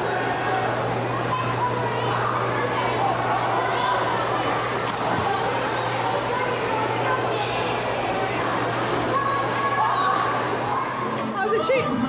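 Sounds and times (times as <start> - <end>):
steady low hum: 0.0 - 11.4
children shouting and chattering: 0.0 - 12.0.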